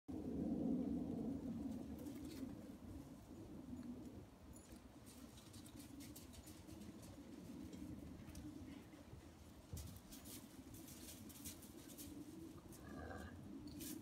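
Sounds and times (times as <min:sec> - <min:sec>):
dogs scuffling on gravel: 0:04.6 - 0:13.0.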